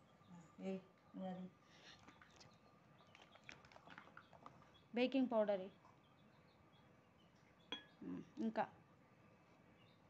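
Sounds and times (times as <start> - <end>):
small containers clicking and tapping: 2.0 - 4.8.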